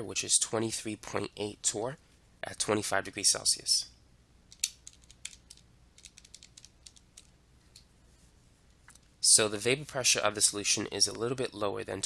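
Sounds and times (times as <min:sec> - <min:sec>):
keys tapping: 0:04.5 - 0:07.3.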